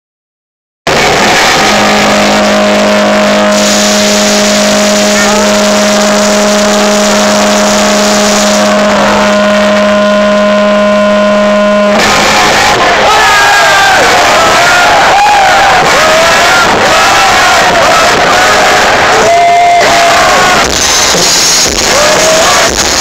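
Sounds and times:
distorted drone from concert speakers: 0.9s - 23.0s.

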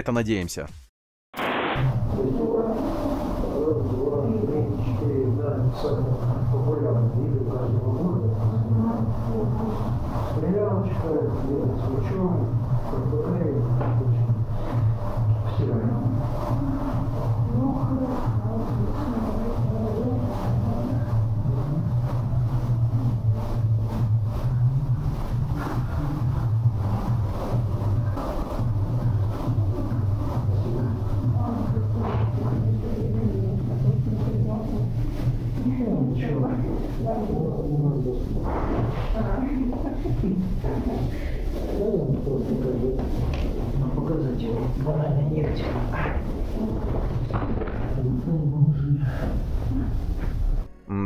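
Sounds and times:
steady low hum: 1.8s - 51.0s
indistinct conversation: 2.0s - 51.0s.

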